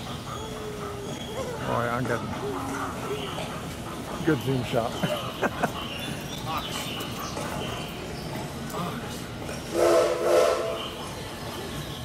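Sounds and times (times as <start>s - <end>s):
steam train whistle: 9.7s - 11.0s.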